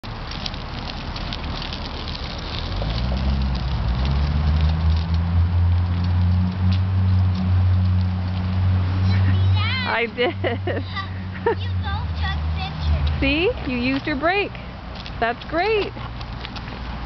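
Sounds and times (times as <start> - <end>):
bike tyres crackling on asphalt: 0.0 - 17.0.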